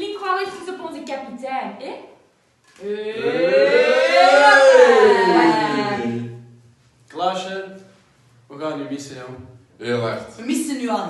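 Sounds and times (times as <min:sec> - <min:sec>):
group of voices cheering: 0:02.8 - 0:06.4.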